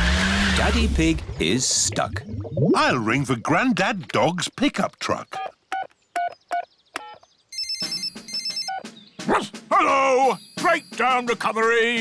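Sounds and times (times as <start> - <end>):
cartoon phone ringing: 7.0 - 8.9, 10.2 - 11.4.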